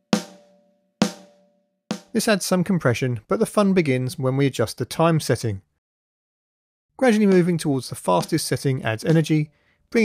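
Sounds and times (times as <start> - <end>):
snare drum hits: 0.0 - 2.2.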